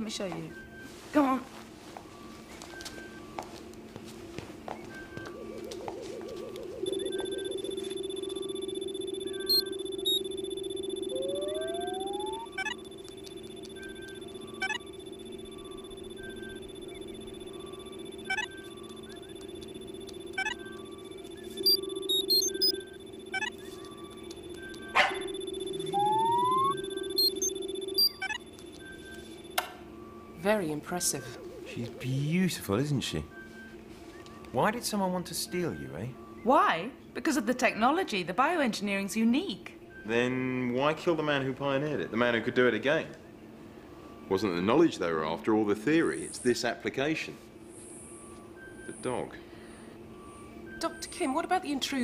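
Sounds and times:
held high synth tones: 4.9s - 33.9s
electronic bleeps and clicks: 5.0s - 29.6s
synth drone: 5.3s - 28.3s
short rising chirps: 6.8s - 24.0s, 24.8s - 28.4s
rising synth glides: 10.8s - 13.0s, 25.3s - 27.7s.

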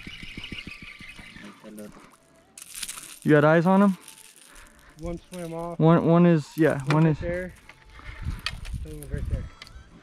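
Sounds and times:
spinning reel ticking: 0.0s - 1.6s.

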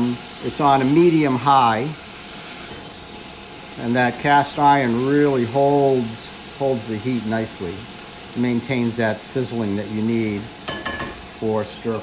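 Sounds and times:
stir-fry sizzling in a wok: 0.0s - 12.0s.

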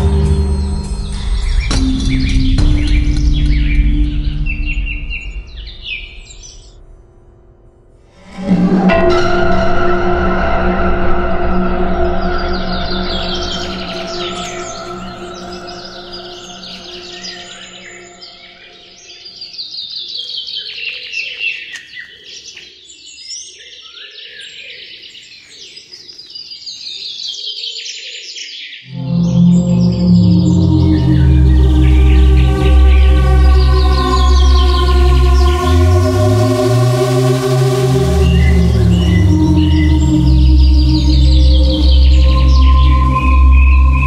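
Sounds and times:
loud music: 0.0s - 6.3s, 8.2s - 18.9s, 28.9s - 44.0s
birds singing high falling notes: 0.0s - 6.9s, 8.2s - 22.5s, 28.8s - 44.0s
held music chord: 0.0s - 19.3s, 28.9s - 44.0s
lower bird calls: 12.1s - 22.7s.

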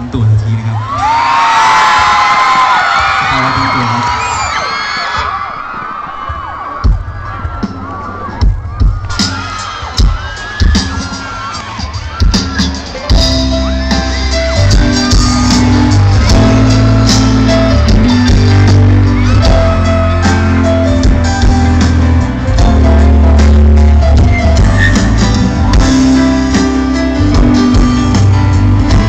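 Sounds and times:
crowd screaming and cheering: 0.0s - 29.0s
live rock band: 6.0s - 29.0s.

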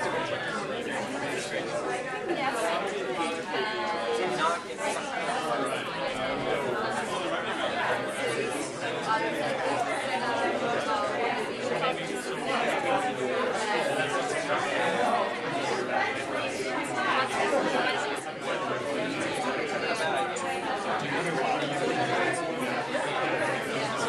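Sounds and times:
many people talking: 0.0s - 24.0s.

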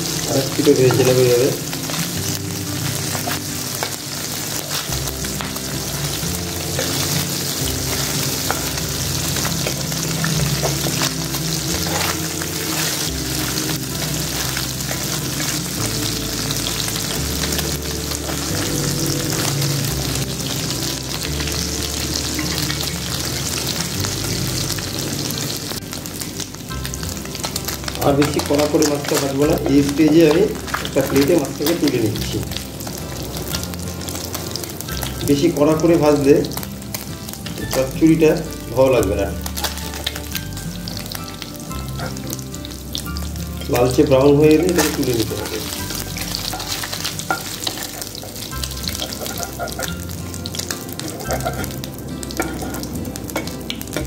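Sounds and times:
fish sizzling in hot oil: 0.0s - 54.0s
spatula stirring in wok: 1.6s - 24.0s, 45.6s - 54.0s.

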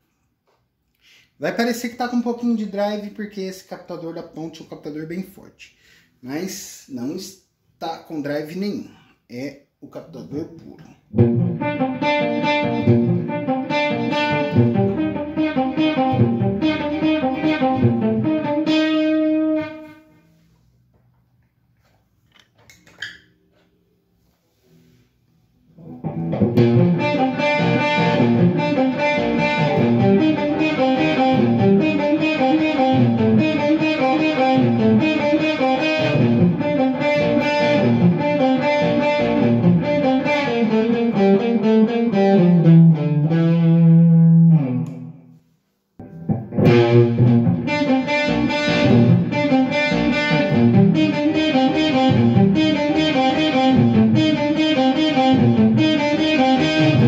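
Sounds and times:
overdriven electric guitar: 10.6s - 20.2s, 25.7s - 45.4s, 46.0s - 57.0s.

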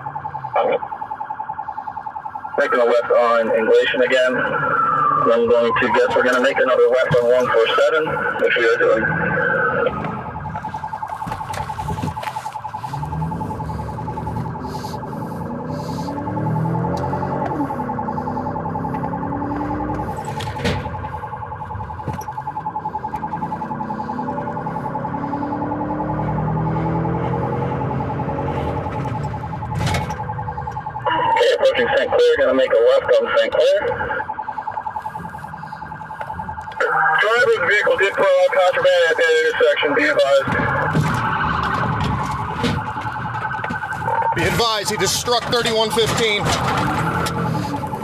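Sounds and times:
police siren warbling: 0.0s - 48.0s
car engine revving: 6.2s - 32.8s, 33.8s - 48.0s.

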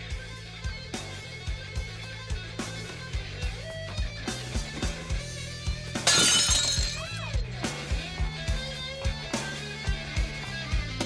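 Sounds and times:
rock band music: 0.0s - 11.0s
glass bottle smashing: 6.0s - 7.2s.

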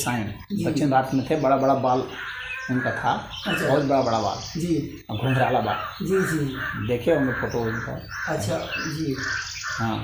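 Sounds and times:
bird calling: 0.0s - 10.0s
man speaking: 0.0s - 10.0s.

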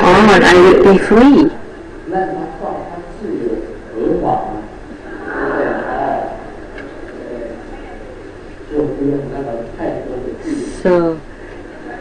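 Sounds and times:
low room murmur: 0.0s - 12.0s.

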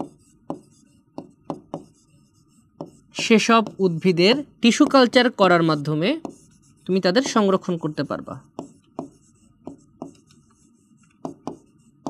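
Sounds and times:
pen tapping on writing board: 0.0s - 2.0s, 2.8s - 5.2s, 6.2s - 6.5s, 7.2s - 7.6s, 8.4s - 10.4s, 11.1s - 11.8s.

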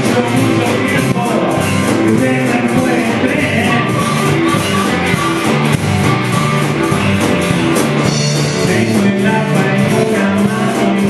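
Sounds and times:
rock band playing boogie: 0.0s - 11.0s
harmonica holding notes: 3.4s - 8.6s.

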